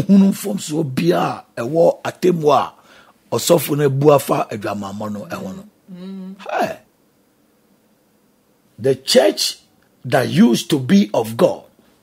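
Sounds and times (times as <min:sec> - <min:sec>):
man humming and exclaiming: 0:05.9 - 0:06.8.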